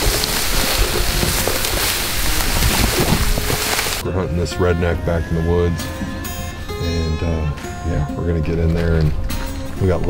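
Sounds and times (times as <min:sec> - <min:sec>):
dry grass rustling in wind: 0:00.0 - 0:04.0.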